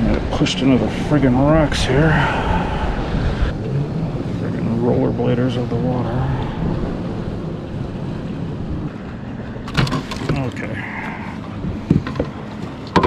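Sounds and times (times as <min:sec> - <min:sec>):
wind and water rumble: 0:00.0 - 0:13.0.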